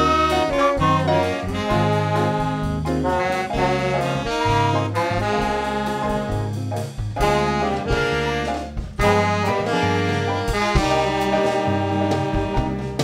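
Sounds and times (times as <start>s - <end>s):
saxophone: 0.0s - 6.6s, 7.2s - 13.0s
bass: 0.0s - 13.0s
drums: 0.0s - 13.0s
horns: 0.0s - 13.0s
jazz band playing: 0.0s - 13.0s.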